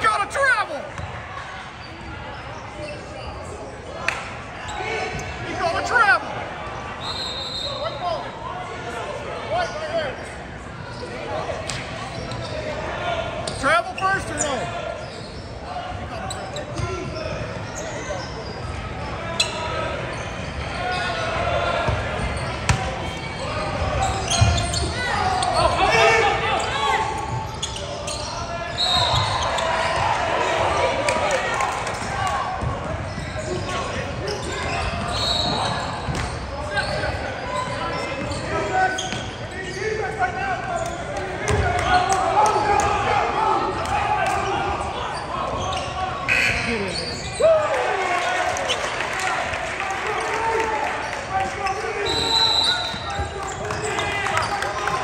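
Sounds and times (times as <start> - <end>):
people calling out and chattering: 0.0 - 55.0.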